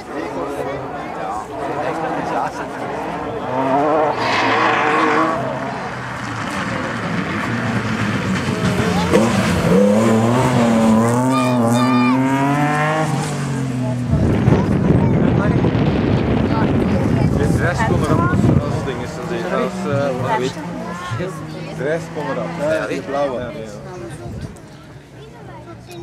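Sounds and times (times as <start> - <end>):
rally car engine revving: 1.4 - 24.5.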